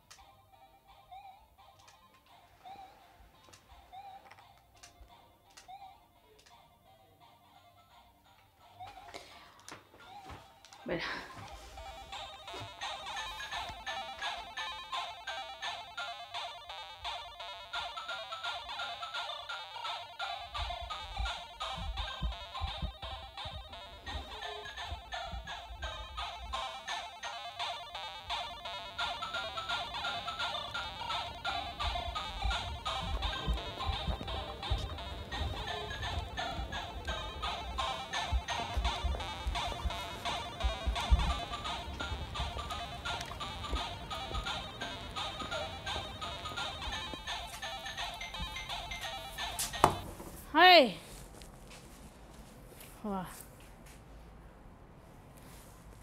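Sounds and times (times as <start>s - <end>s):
chiptune music: 11.6s - 49.9s.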